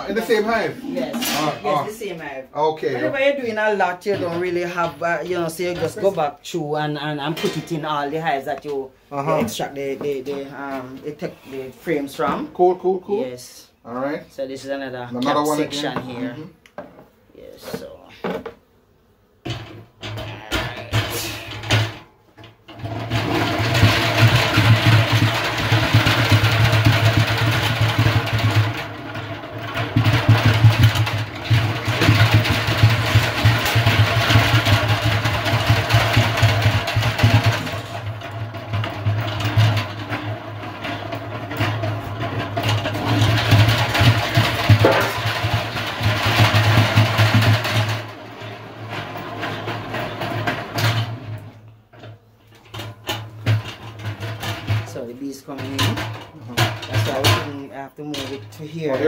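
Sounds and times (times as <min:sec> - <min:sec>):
hand-cranked extractor gears whirring: 0:22.7 - 0:51.5.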